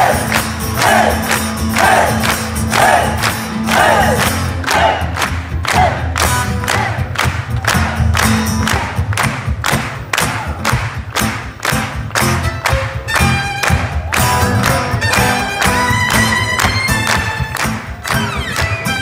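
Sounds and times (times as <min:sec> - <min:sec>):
crowd singing and shouting: 0:00.0 - 0:09.0
drum beat: 0:00.0 - 0:19.0
live band playing: 0:00.0 - 0:19.0.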